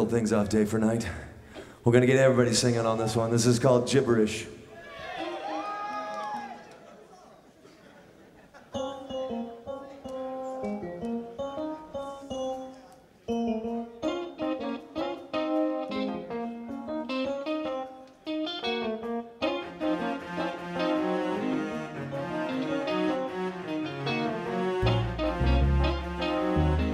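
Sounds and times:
keyboard playing rock notes and chords: 0:08.7 - 0:26.9.

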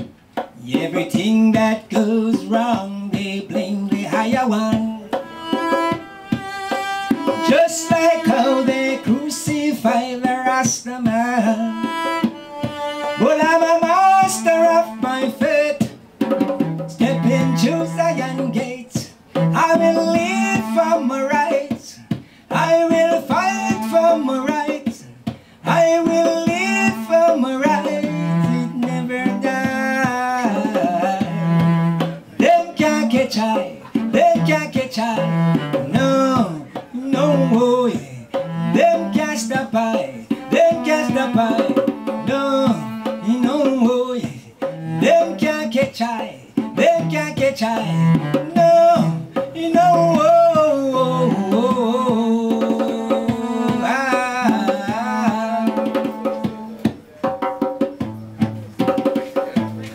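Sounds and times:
hand drum beat: 0:00.0 - 0:59.9
bowed cello melody: 0:04.0 - 0:15.6, 0:16.4 - 0:21.2, 0:25.6 - 0:37.6, 0:38.3 - 0:43.9, 0:44.7 - 0:45.4, 0:46.6 - 0:56.9.

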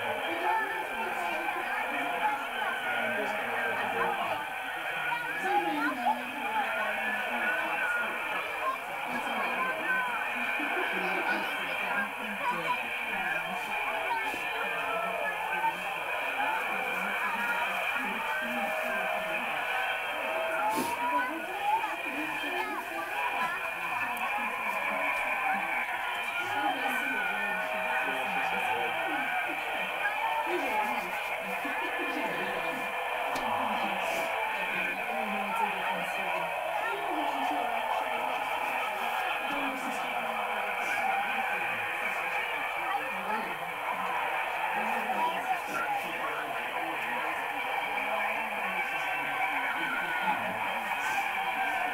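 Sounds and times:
tinny voices from tv speaker: 0:00.0 - 0:51.9.

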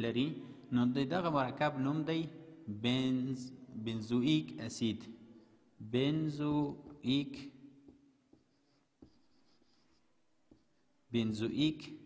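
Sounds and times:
soft taps: 0:07.8 - 0:10.9
marker squeaking on whiteboard: 0:07.9 - 0:11.1.

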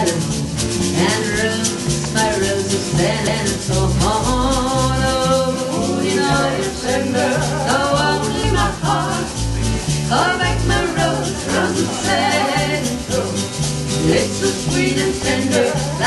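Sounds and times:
bass line: 0:00.0 - 0:16.0
guitar: 0:00.0 - 0:16.0
hand shaker rattling: 0:00.0 - 0:16.0.

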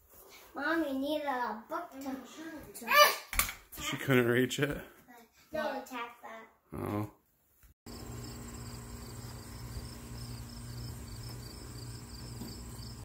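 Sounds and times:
high-pitched insect chirping: 0:07.9 - 0:13.0
steady low hum: 0:07.9 - 0:13.0.

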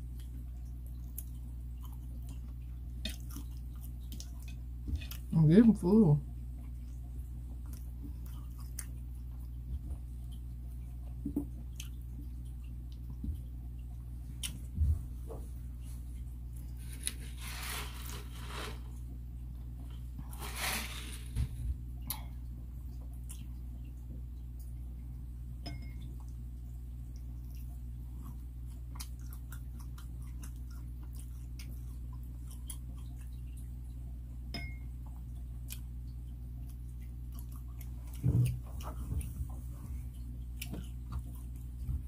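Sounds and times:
close-miked chewing: 0:00.0 - 0:05.4, 0:06.3 - 0:17.5, 0:21.8 - 0:25.2, 0:26.0 - 0:42.0
steady low hum: 0:00.0 - 0:42.0.

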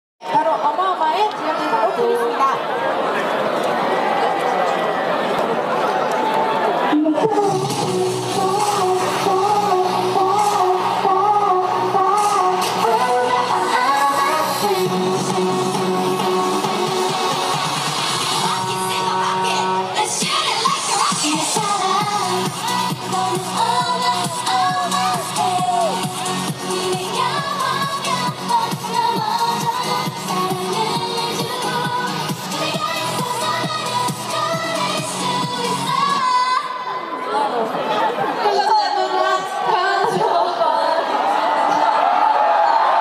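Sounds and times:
voices chattering: 0:00.2 - 0:14.9
dance-pop song with female vocals: 0:06.9 - 0:37.8, 0:38.4 - 0:43.0.

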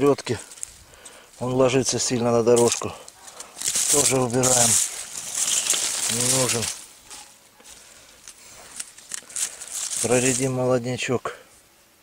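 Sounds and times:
rustling of canes and dry leaves: 0:00.0 - 0:11.8.

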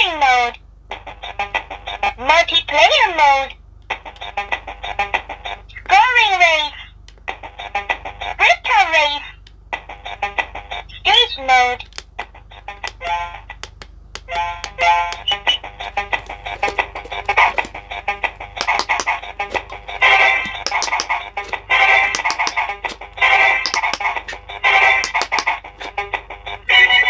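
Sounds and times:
rapid clicking of button presses: 0:18.6 - 0:19.2, 0:20.5 - 0:22.7, 0:25.0 - 0:25.6.

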